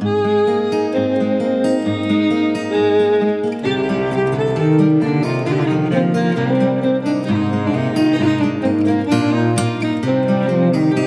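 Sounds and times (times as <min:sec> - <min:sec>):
acoustic folk guitar music: 0:00.0 - 0:11.0.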